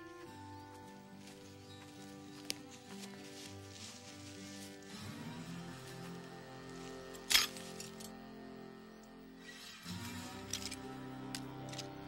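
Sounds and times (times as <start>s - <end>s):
soft background music: 0.0s - 12.0s
metal trap snapping shut: 7.3s - 8.1s.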